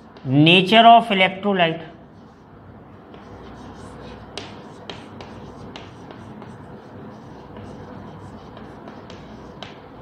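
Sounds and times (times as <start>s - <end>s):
chalk tapping on blackboard: 0.0s - 0.5s, 3.0s - 10.0s.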